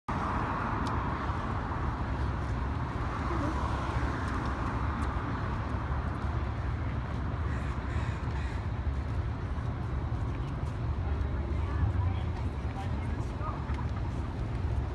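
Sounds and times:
road traffic: 0.1 - 14.9.

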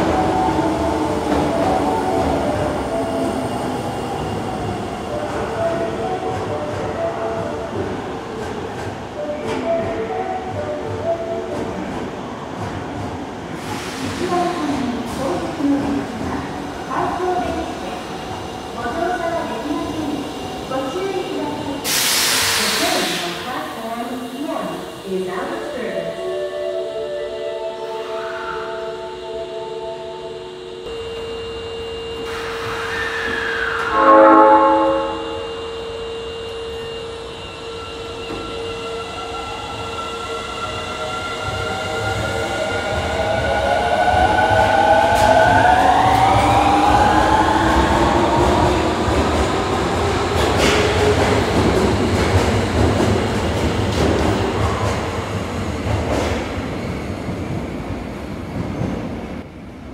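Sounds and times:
train horn blast: 33.2 - 35.8.

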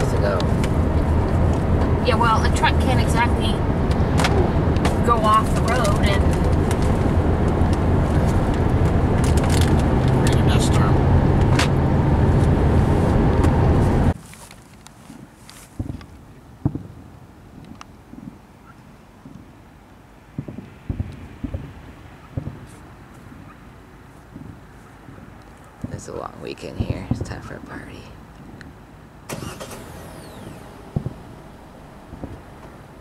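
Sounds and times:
car interior road and engine noise: 0.0 - 33.0
distant fireworks thuds: 15.7 - 18.4, 20.3 - 23.6, 24.3 - 27.4, 30.9 - 31.3, 32.1 - 32.9.

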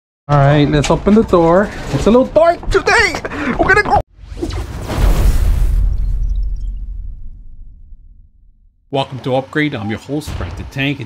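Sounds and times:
deep rumble: 4.4 - 8.9.

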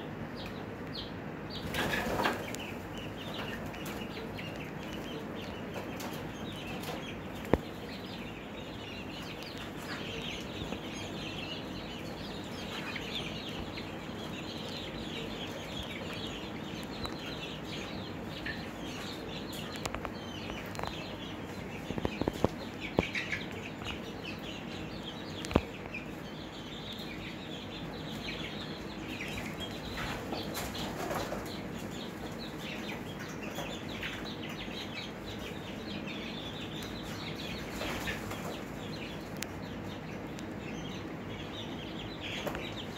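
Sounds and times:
chicks peeping and chirping: 0.0 - 42.9
steady low hum: 0.0 - 42.9.

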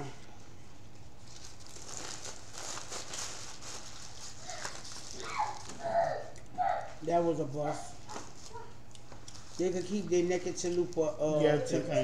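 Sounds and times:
paper wrappers crinkling: 0.9 - 7.1, 7.7 - 12.0.

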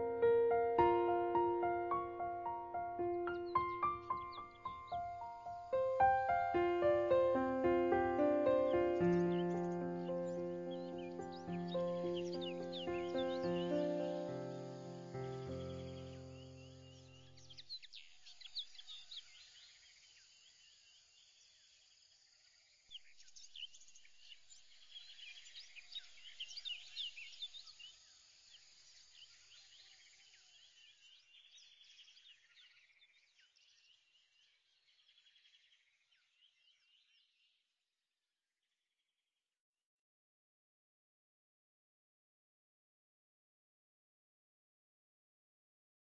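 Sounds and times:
background music: 0.0 - 16.8
birds chirping and twittering: 0.0 - 21.6, 22.5 - 37.5.

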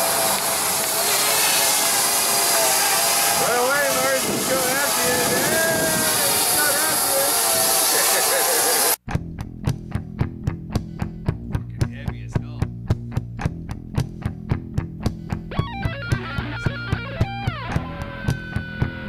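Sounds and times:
drone propellers whirring: 0.0 - 9.0
metal music with bass and drums: 9.1 - 19.0.

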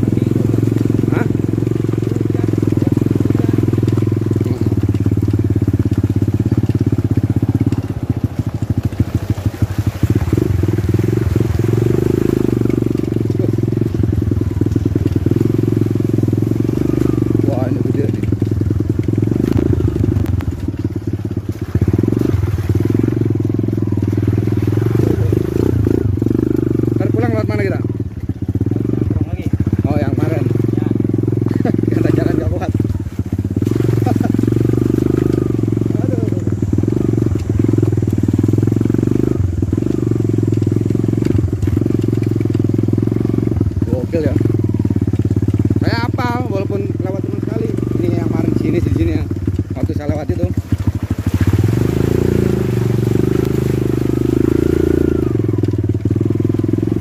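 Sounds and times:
motorcycle engine running: 0.0 - 57.0.

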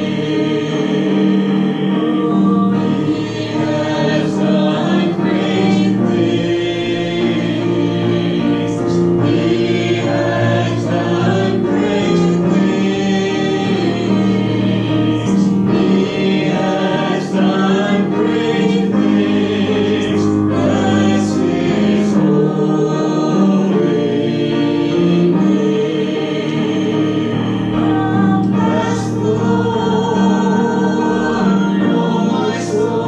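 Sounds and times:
congregation singing gospel chorus: 0.0 - 33.0.

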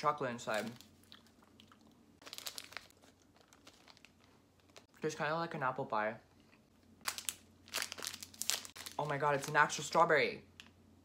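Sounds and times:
snack wrapper crinkling: 0.5 - 5.0, 7.0 - 9.7.

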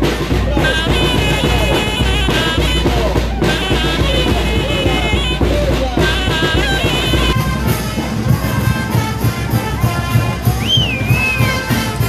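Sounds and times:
brass band music with drums: 0.0 - 12.0.

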